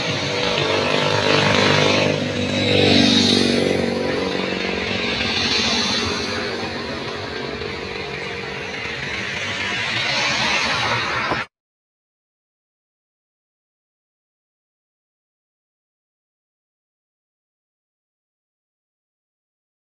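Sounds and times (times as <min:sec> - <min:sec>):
cars passing: 0:00.0 - 0:11.5
motorcycles passing: 0:00.0 - 0:11.5.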